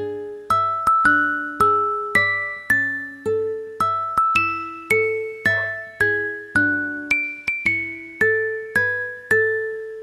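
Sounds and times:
slow bell-like melody: 0:00.0 - 0:10.0.

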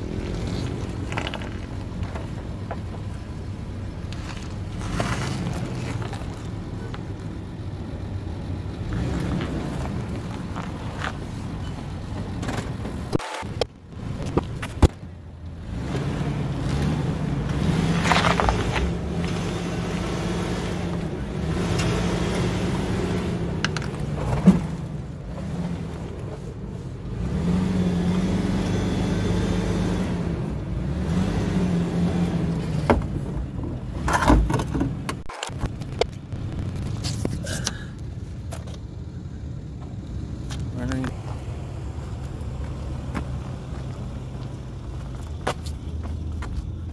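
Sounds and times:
suv engine rumbling at crawl: 0:00.0 - 0:46.9.

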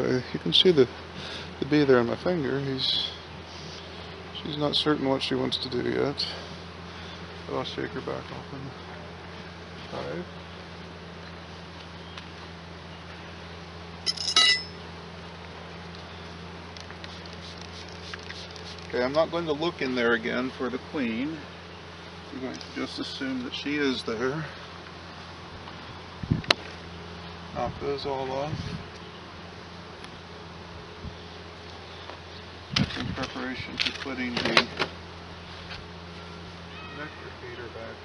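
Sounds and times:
metal tool clinking: 0:14.0 - 0:14.8.

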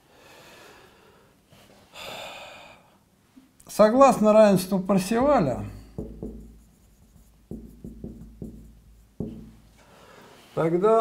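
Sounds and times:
marker writing on whiteboard: 0:05.1 - 0:09.6.

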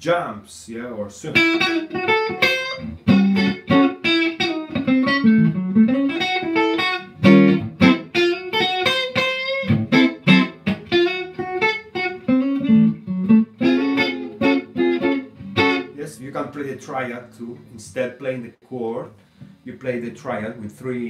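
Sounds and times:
electric guitar blues phrase: 0:01.2 - 0:18.2.

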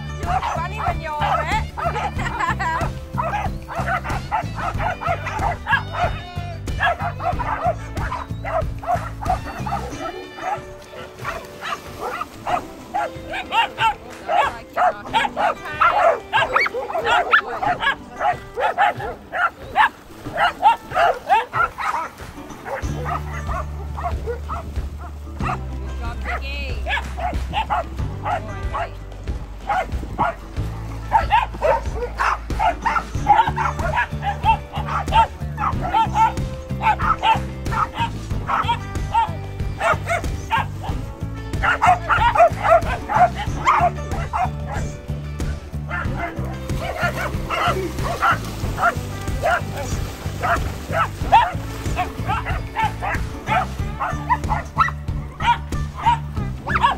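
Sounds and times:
background music with bass: 0:00.0 - 0:56.9
dogs barking excitedly: 0:00.1 - 0:28.9, 0:29.6 - 0:45.1, 0:45.8 - 0:56.9.

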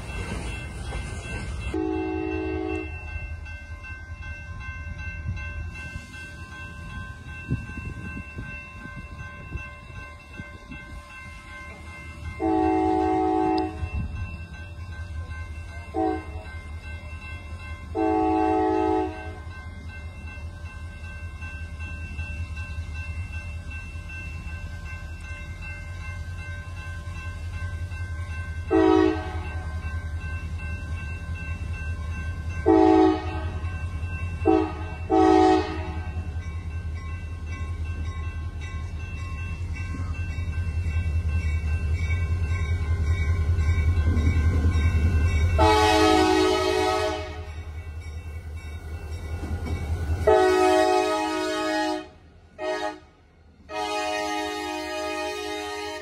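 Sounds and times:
diesel locomotive engine rumble: 0:00.0 - 0:56.0
train air horn blasts: 0:01.8 - 0:02.9, 0:12.4 - 0:13.9, 0:15.9 - 0:16.4, 0:17.9 - 0:19.4, 0:28.7 - 0:29.4, 0:32.7 - 0:33.6, 0:34.4 - 0:36.1, 0:45.6 - 0:47.5, 0:50.2 - 0:56.0.

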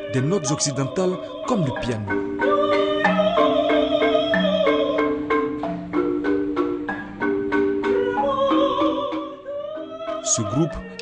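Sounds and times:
wooden xylophones playing: 0:00.0 - 0:11.0.

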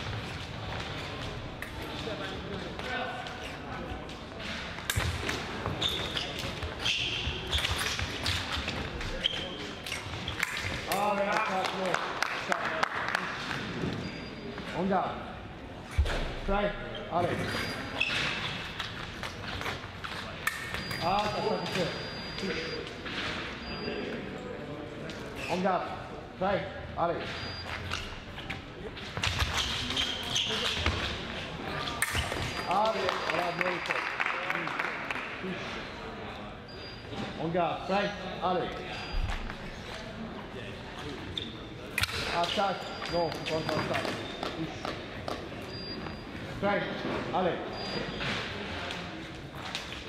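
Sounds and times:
voices echoing in a hall: 0:00.0 - 0:50.0.

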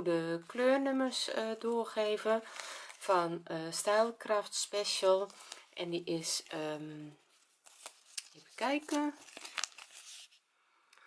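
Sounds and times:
paper label crinkling: 0:07.3 - 0:10.4.

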